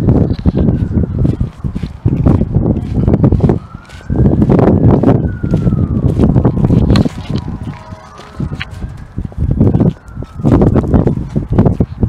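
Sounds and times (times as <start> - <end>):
faint wailing siren: 0.0 - 12.0
wind noise on microphone: 0.0 - 12.0.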